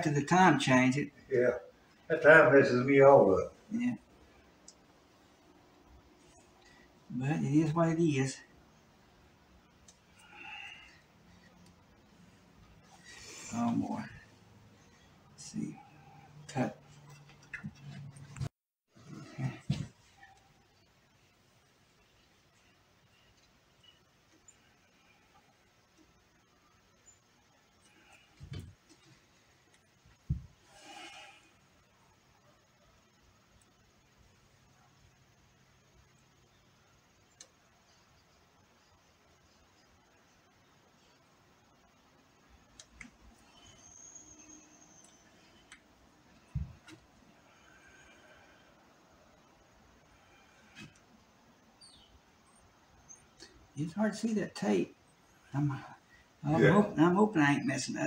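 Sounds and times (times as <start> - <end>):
dull thumps: 30.2 - 30.6.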